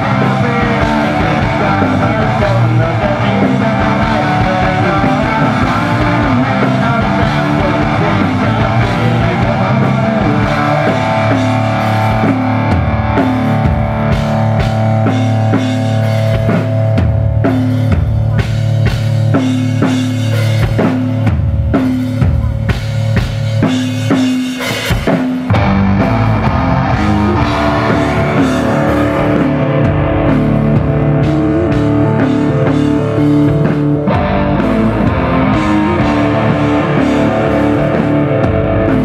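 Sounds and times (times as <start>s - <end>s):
bass guitar: 0.0s - 39.0s
drum kit beating: 0.0s - 39.0s
electric guitar: 0.0s - 39.0s.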